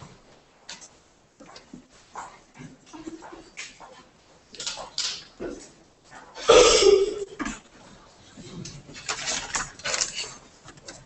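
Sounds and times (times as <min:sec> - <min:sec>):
woman coughing: 0:06.4 - 0:07.4.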